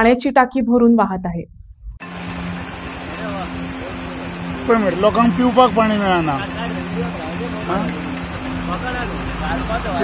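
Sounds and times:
low hum: 1.4s - 10.0s
water rushing down track: 2.0s - 10.0s.

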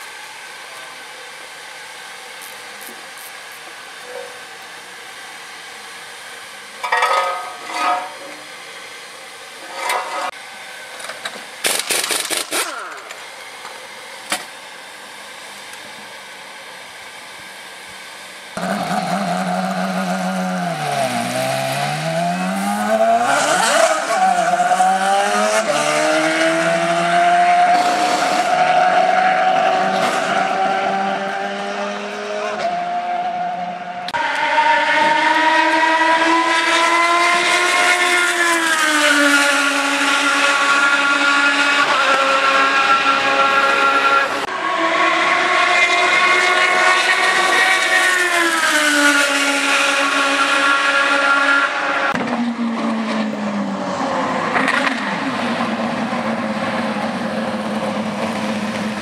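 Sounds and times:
race car engine: 0.0s - 59.0s.

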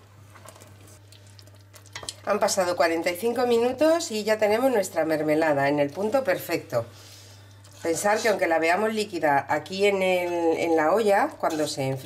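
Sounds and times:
spatula scraping pot: 7.1s - 12.0s.

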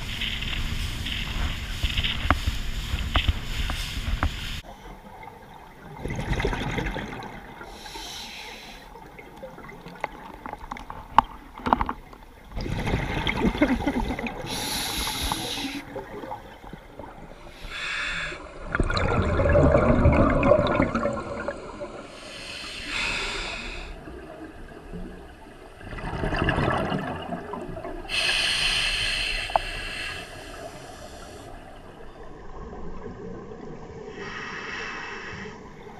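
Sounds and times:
exhaled bubbles gurgling: 0.0s - 8.2s, 8.8s - 17.6s, 18.3s - 22.2s, 23.6s - 28.2s
regulator hissing inhalations: 7.7s - 9.0s, 14.4s - 15.9s, 17.4s - 18.4s, 22.2s - 24.0s, 28.1s - 31.5s.

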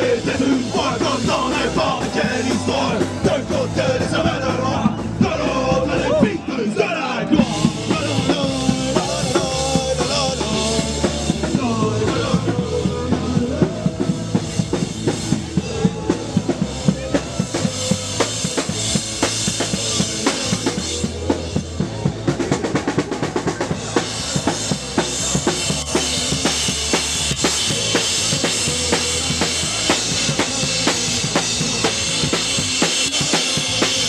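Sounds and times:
steady drum beat: 0.0s - 6.6s, 7.3s - 34.0s
bass guitar: 0.0s - 34.0s.

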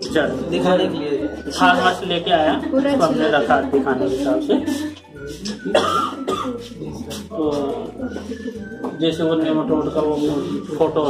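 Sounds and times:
man's cough-like burst: 5.7s - 6.6s.

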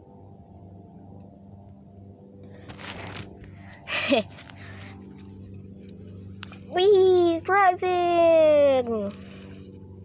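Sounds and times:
steady low hum: 0.0s - 10.0s
phone rustling: 2.6s - 3.5s.

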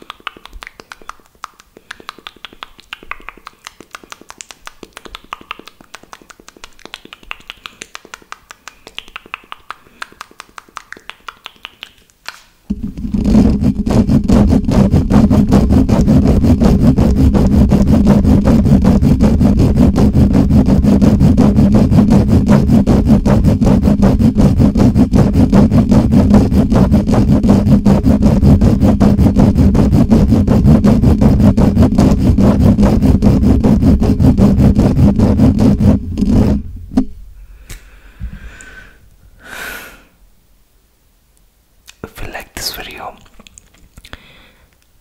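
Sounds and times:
fingers rubbing a microphone: 12.7s - 37.1s.

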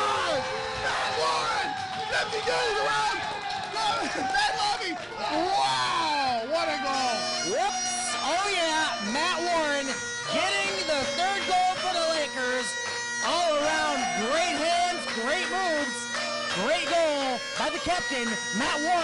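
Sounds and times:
people shouting excitedly: 0.0s - 9.8s
bagpipes playing: 6.4s - 19.0s.

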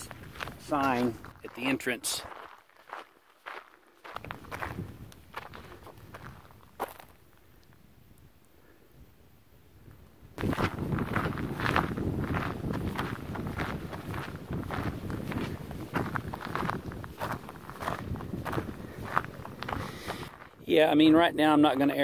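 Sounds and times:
footsteps crunching on gravel: 0.0s - 7.4s, 10.4s - 22.0s.

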